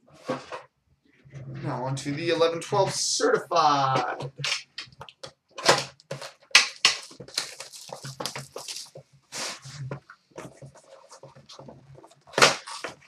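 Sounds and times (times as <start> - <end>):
shrink-wrap crinkling and tearing: 5.6 - 9.9, 12.3 - 13.0.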